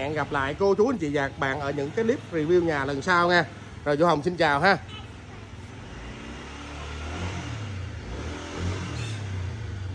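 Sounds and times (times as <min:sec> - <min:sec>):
street noise: 0:00.0 - 0:09.9.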